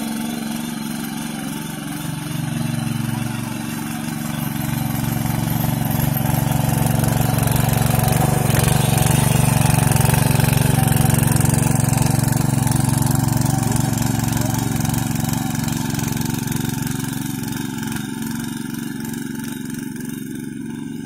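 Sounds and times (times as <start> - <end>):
power tiller engine running: 0.0 - 21.0
tines churning wet soil: 0.0 - 21.0.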